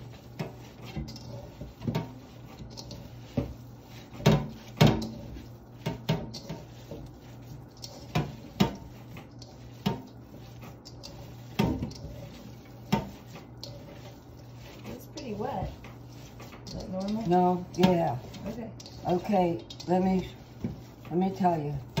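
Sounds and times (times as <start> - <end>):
hands kneading meat mixture: 0.0 - 22.0.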